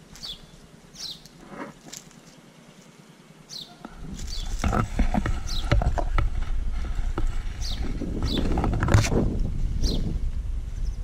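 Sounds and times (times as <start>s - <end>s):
leaves and twigs rustling: 0.0s - 9.6s.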